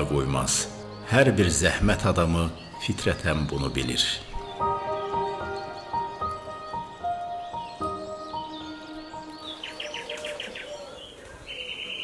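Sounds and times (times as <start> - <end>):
songbird trill: 0.0 - 12.0.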